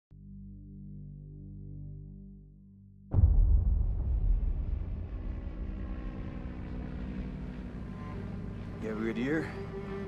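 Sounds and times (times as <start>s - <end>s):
turboprop airplane engine drone: 4.0s - 10.0s.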